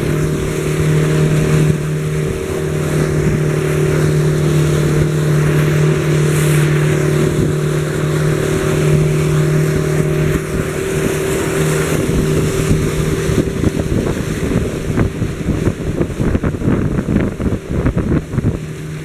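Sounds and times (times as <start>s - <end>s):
motorboat engine drone: 0.0s - 19.0s
water churning: 0.0s - 19.0s
wind on microphone: 0.0s - 19.0s.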